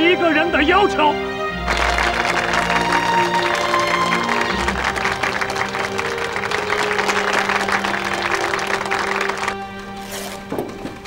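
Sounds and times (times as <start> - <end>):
background music with held tones: 0.0 - 11.0
crowd applauding: 1.6 - 9.9.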